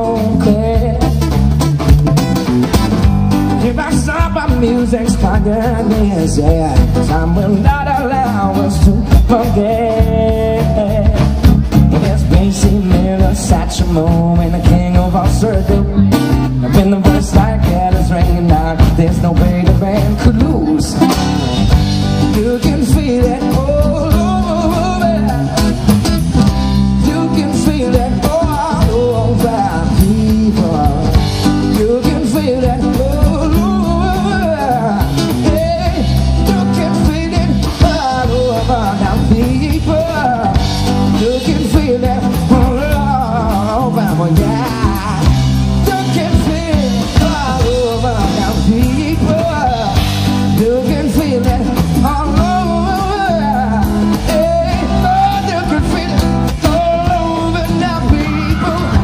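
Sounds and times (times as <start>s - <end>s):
person singing: 0.0s - 1.6s, 2.6s - 59.0s
acoustic guitar: 0.0s - 59.0s
drums with cymbals: 0.0s - 59.0s
live rock band playing: 0.0s - 59.0s.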